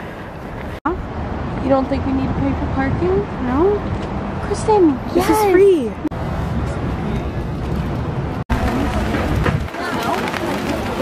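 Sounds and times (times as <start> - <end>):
wind rumble on microphone: 0.0 - 5.0, 6.2 - 11.0
faint voices: 8.5 - 11.0.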